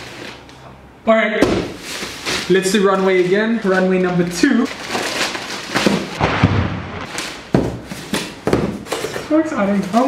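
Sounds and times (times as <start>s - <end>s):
plastic bag crinkling and tearing: 4.6s - 6.2s.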